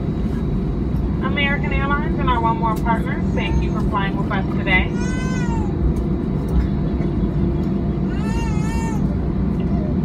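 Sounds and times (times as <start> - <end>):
airplane cabin rumble while taxiing: 0.0 - 10.0.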